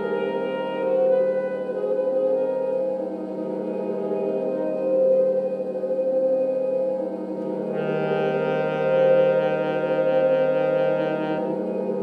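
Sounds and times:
saxophone long low note: 0:07.6 - 0:12.0.

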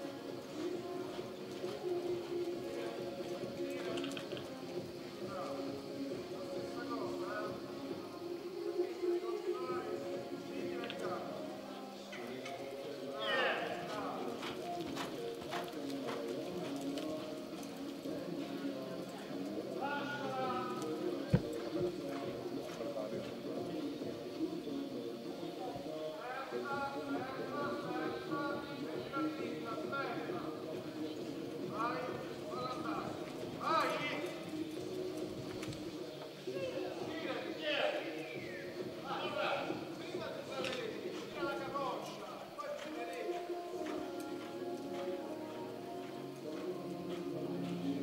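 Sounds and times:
faint background voices: 0:00.0 - 0:48.0
horse hoofbeats on soft dirt: 0:00.0 - 0:48.0
people talking: 0:00.0 - 0:48.0.

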